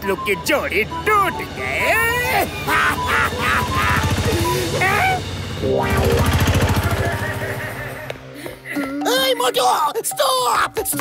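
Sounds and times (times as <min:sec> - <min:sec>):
cartoon van engine chugging: 0:00.0 - 0:08.4.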